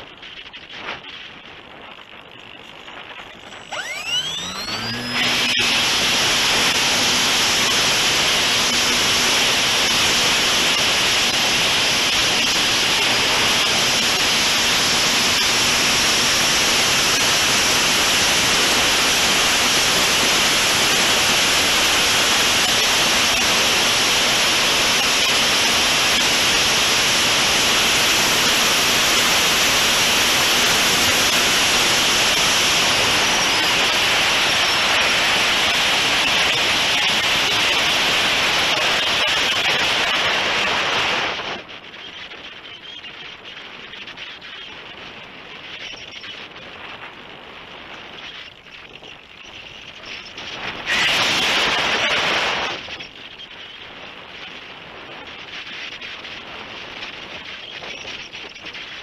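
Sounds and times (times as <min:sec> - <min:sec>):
propeller and airflow rush: 0:00.0 - 0:59.0
electric motor whine: 0:02.3 - 0:41.6, 0:49.0 - 0:53.1.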